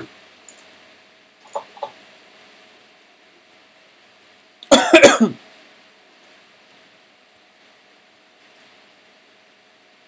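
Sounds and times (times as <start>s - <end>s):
person coughing: 4.6s - 5.4s.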